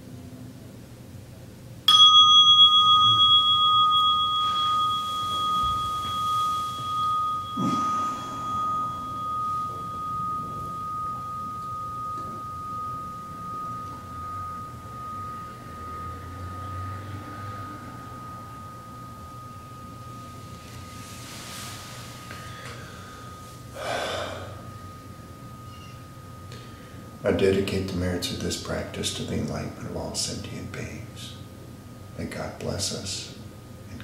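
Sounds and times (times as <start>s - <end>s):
singing bowl ringing: 1.9s - 32.1s.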